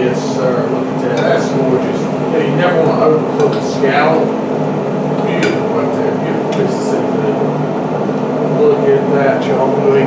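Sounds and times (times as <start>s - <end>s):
scallops sizzling: 0.0s - 7.6s
steady hum: 0.0s - 10.0s.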